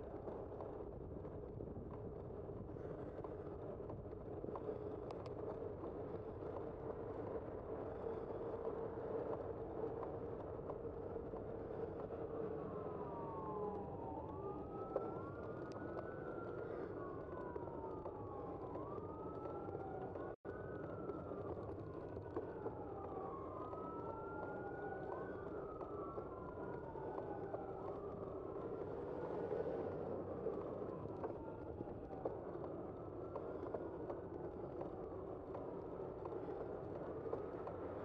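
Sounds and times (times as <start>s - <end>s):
emergency vehicle siren wailing: 6.4s - 38.0s.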